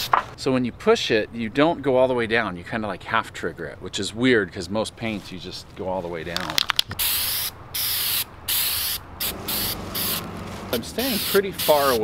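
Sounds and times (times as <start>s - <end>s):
aerosol spray can hissing: 7.0s - 12.0s.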